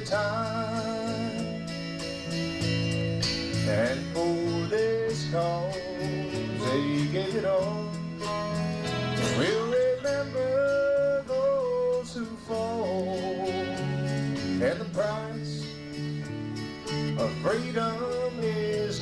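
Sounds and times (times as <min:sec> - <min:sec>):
man singing: 0:00.0 - 0:01.7, 0:03.6 - 0:08.4, 0:09.2 - 0:16.0, 0:17.2 - 0:19.0
strummed acoustic guitar: 0:00.0 - 0:19.0
sliding melody line: 0:03.6 - 0:19.0.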